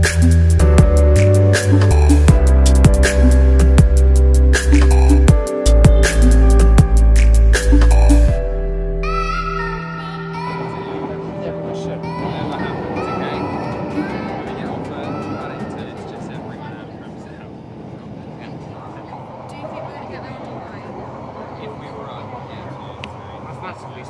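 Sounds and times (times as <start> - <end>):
music: 0.0 - 16.5
underground train rumbling: 0.0 - 24.0.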